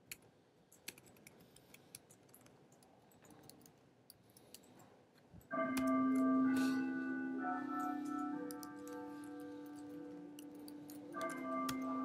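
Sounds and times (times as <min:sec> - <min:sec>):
bell-like chiming melody: 0:05.5 - 0:12.0
keyboard clicks: 0:08.4 - 0:09.8, 0:10.4 - 0:11.9.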